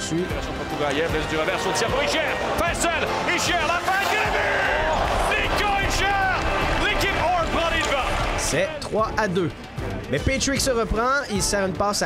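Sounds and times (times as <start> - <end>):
background music: 0.0 - 12.0
arena crowd: 0.3 - 11.3.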